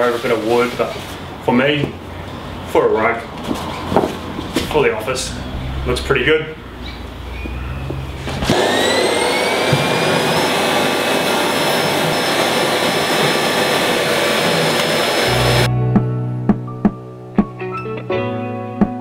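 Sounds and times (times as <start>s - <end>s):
vacuum cleaner motor whine: 8.1s - 15.7s.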